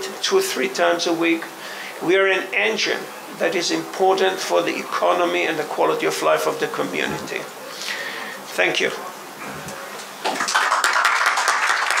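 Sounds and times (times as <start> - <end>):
audience applauding: 9.7 - 12.0.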